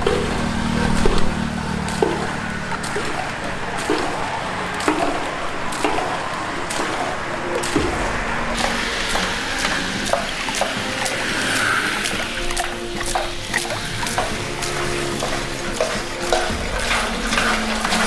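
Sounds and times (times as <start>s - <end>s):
background music: 0.0s - 18.0s
water pouring from a hose: 0.0s - 18.0s.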